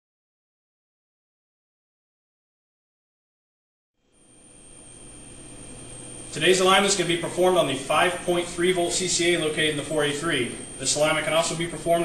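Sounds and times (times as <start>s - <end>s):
faint electrical hum: 4.0s - 12.0s
thin high whine: 4.0s - 12.0s.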